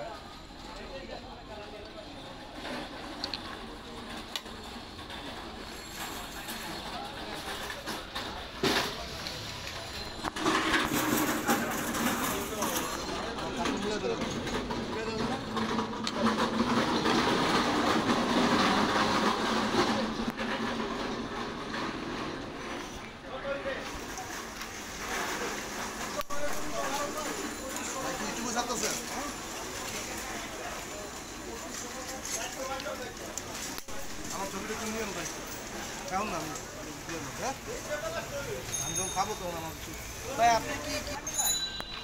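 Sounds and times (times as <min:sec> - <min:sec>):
voices in background: 0:00.0 - 0:18.0, 0:22.5 - 0:42.0
busy street noise: 0:00.0 - 0:42.0.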